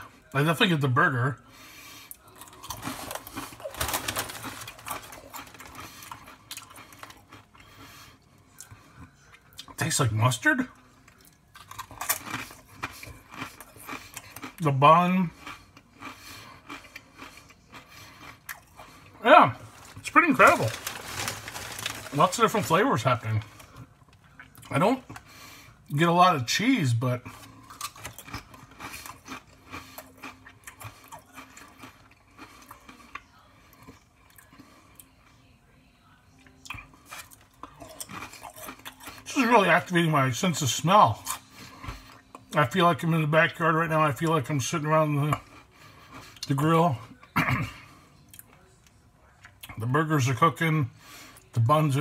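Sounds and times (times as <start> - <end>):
potato chips being chewed: 2.1 - 25.3, 27.2 - 35.2, 36.4 - 42.8.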